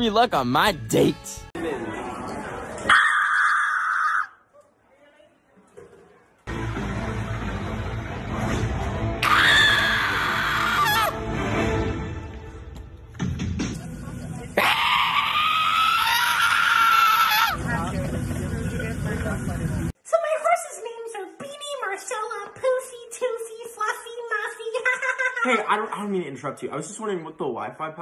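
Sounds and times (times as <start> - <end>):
young man screaming: 9.2 - 11.2, 14.6 - 17.6.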